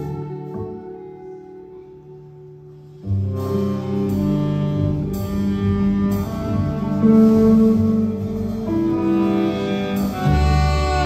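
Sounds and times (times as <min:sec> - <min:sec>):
deep bass note: 0:00.0 - 0:11.0
live jazz band playing: 0:00.0 - 0:11.0.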